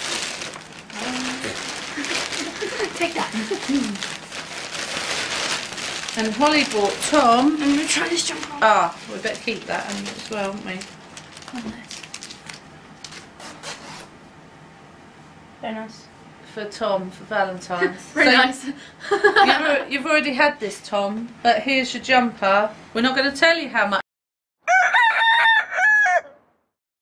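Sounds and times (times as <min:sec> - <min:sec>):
fabric and paper rustling: 0:00.0 - 0:13.8.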